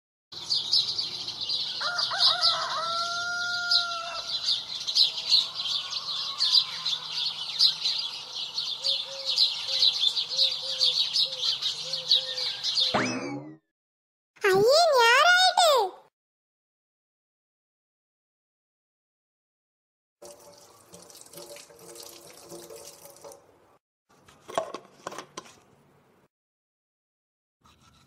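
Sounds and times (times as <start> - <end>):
birds chirping: 0.4 - 13.0
rooster crowing: 1.7 - 7.5.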